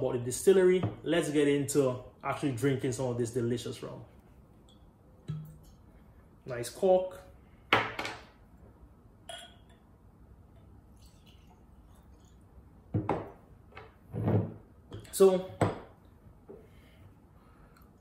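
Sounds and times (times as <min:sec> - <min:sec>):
glass bottle knocks and clinks: 0:05.3 - 0:05.6, 0:09.3 - 0:09.8, 0:12.9 - 0:13.4
liquid pouring into a glass: 0:10.6 - 0:12.6.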